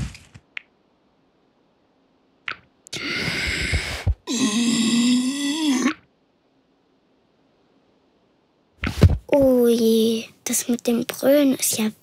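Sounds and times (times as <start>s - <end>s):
cartoon lion feeble roar: 3.0s - 6.0s.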